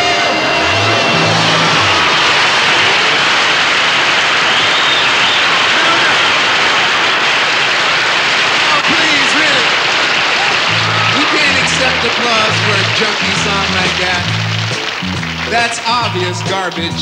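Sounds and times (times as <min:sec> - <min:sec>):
band holding low notes: 0:00.0 - 0:04.4, 0:10.4 - 0:17.0
audience applauding and cheering: 0:00.0 - 0:17.0.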